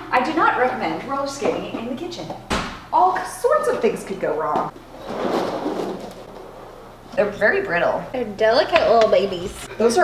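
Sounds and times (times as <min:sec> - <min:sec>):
roller skate wheels rolling: 0:04.8 - 0:07.2.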